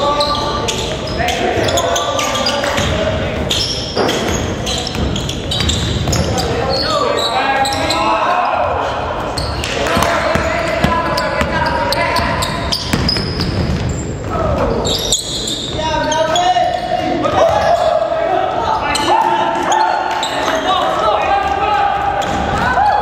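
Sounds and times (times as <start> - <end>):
players calling out: 0.0 - 23.0
basketball bouncing on hardwood: 12.9 - 13.8.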